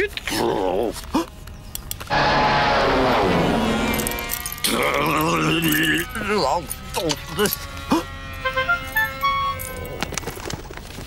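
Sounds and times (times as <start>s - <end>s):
falling tone: 2.1s - 9.8s
keys jangling: 4.0s - 7.7s, 8.9s - 10.0s.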